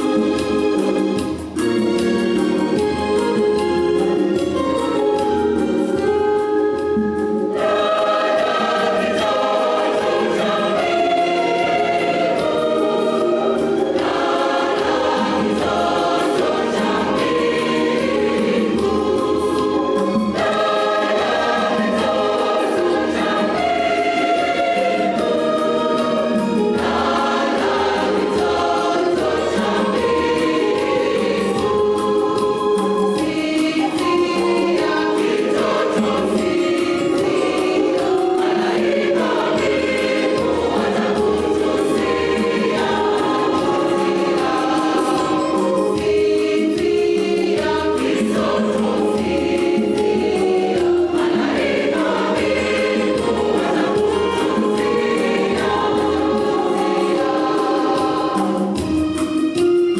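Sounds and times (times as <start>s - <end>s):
church choir singing a carol: 0.0s - 59.9s.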